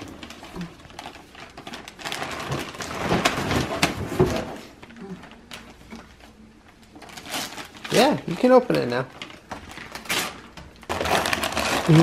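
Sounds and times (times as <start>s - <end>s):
wrapping paper tearing and crumpling: 0.0s - 6.3s, 7.0s - 12.0s.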